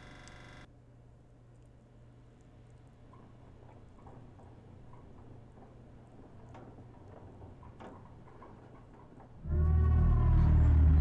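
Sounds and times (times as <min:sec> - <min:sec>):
ominous horror music sting: 0:09.4 - 0:11.0.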